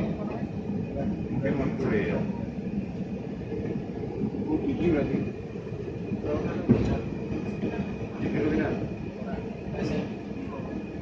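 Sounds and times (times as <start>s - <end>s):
train low rumble: 0.0s - 11.0s.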